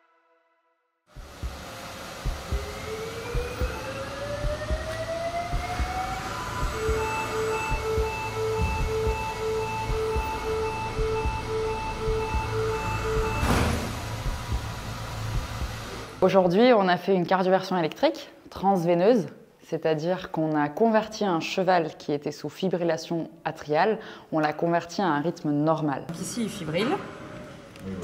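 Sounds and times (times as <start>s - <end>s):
defibrillator charging whine: 1.1s - 16.3s
sharp burst of noise: 1.1s - 16.4s
low rumble: 3.3s - 16.2s
defibrillator ready beeps: 5.5s - 14.7s.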